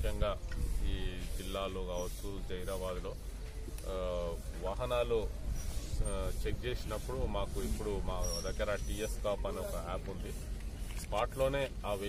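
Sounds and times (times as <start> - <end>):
man speaking: 0.0 - 3.2, 3.8 - 5.4, 6.0 - 10.4, 11.0 - 12.0.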